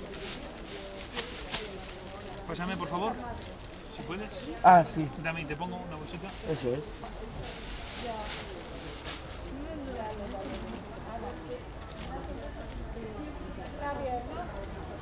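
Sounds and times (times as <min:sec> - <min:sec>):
plastic bag rustling: 0:00.0 - 0:12.7
quiet background voices: 0:00.0 - 0:15.0.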